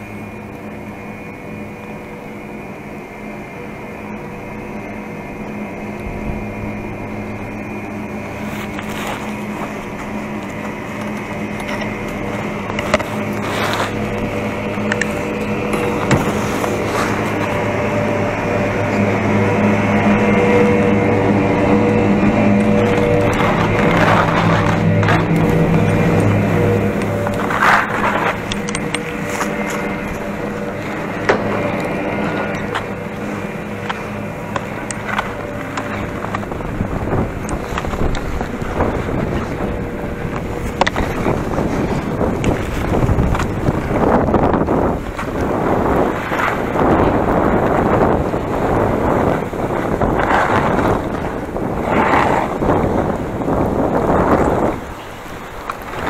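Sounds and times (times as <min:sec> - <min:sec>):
machinery humming drone: 0:00.0 - 0:56.0
skis scraping over icy snow: 0:04.8 - 0:56.0.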